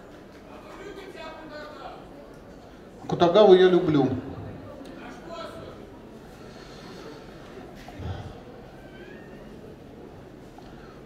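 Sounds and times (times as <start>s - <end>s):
exhibition hall background noise: 0.0s - 11.0s.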